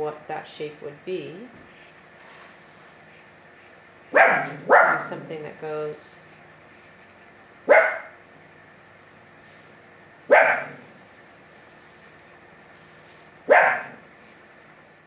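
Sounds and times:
dog barking: 4.1 - 5.2, 7.7 - 8.2, 10.3 - 10.8, 13.5 - 14.0.

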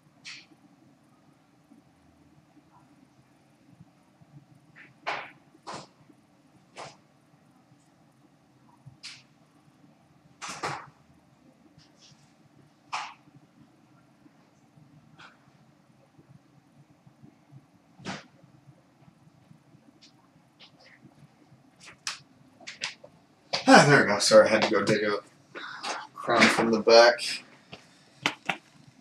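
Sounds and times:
low room hum: 0.0 - 29.0.

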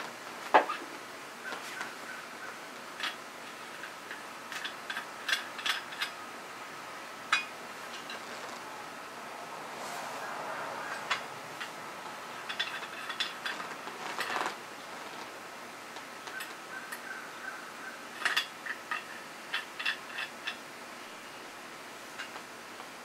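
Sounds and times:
metal clicks and rattles: 2.9 - 6.2, 11.0 - 15.3, 18.1 - 20.6.

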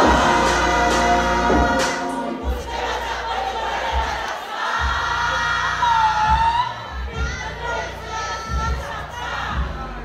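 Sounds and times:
crowd shouting and cheering: 0.0 - 10.0
dancehall music with deep bass: 0.0 - 10.0.

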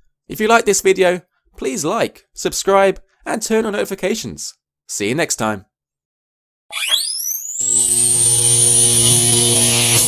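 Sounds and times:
electric hum with high whine: 7.6 - 10.0.

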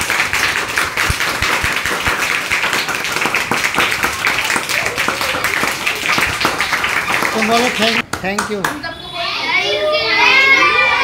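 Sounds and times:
children chattering and calling out: 8.8 - 11.0.

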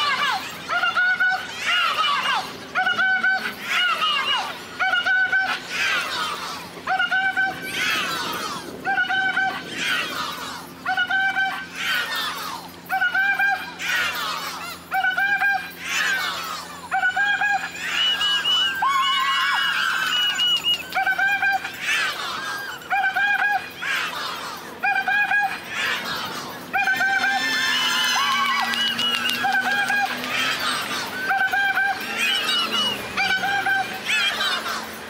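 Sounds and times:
passing traffic: 0.0 - 35.0.

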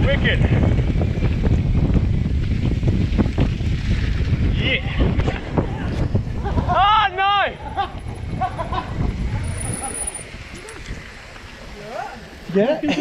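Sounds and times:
wind buffeting microphone: 0.0 - 11.8
bike tyre rumble: 0.0 - 12.6.

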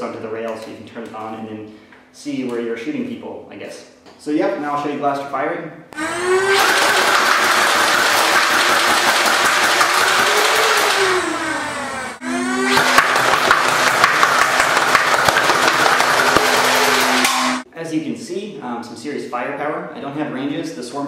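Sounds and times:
electric motor whine: 6.0 - 17.6.

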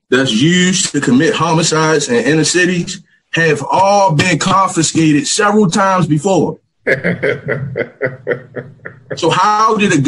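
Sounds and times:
man chuckling: 6.9 - 9.4.

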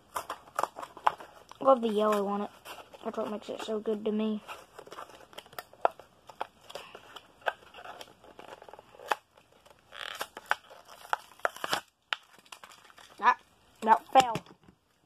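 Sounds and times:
plastic and cardboard crinkling: 0.0 - 15.0.

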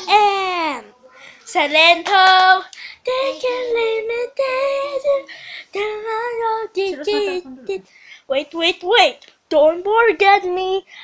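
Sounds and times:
young girl singing: 0.0 - 8.7, 9.5 - 11.0.

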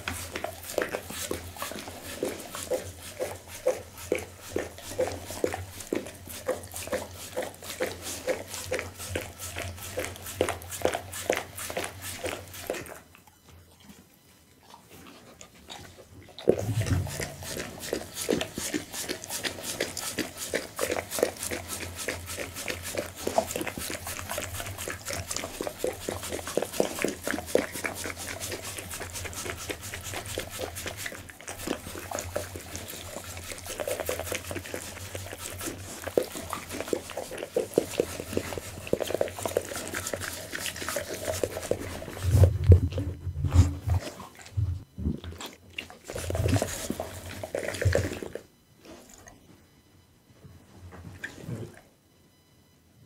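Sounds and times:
dog licking and smacking: 0.0 - 49.5.

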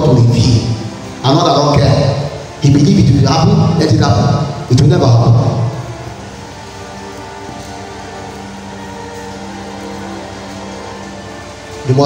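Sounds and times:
soft music of sustained chords: 0.0 - 12.0.

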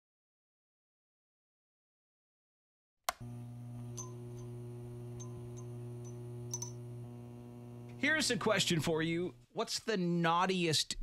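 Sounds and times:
neon sign buzzing: 3.1 - 9.4.

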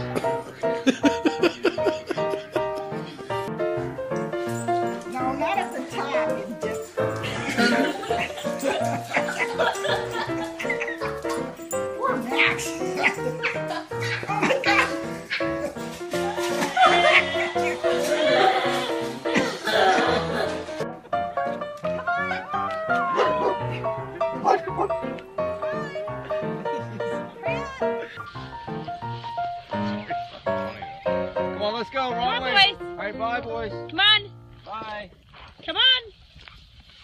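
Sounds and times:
background music: 0.0 - 34.7
dog barking: 12.0 - 15.7, 23.1 - 23.6, 24.3 - 25.0
husky howling: 22.2 - 26.1.

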